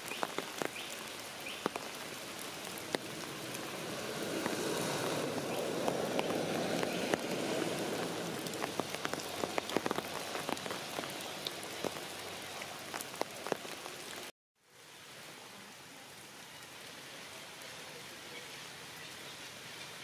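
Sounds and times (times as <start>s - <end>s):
rain on leaves: 0.0s - 20.0s.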